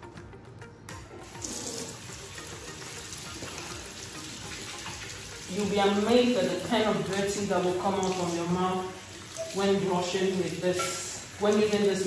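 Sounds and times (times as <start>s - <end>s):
tap water pouring into sink: 1.2s - 12.0s.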